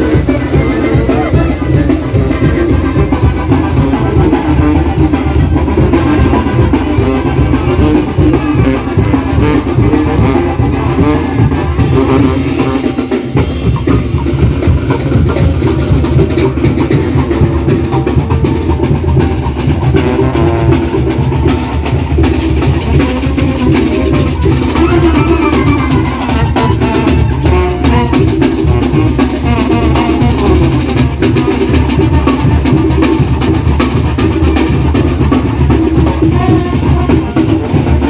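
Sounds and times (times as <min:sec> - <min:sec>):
marching brass band playing: 0:00.0 - 0:38.0.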